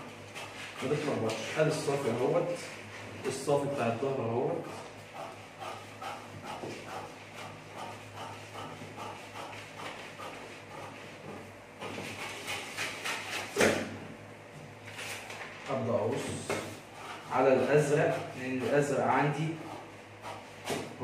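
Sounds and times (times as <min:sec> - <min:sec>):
paper rustling: 0:14.8 - 0:15.8.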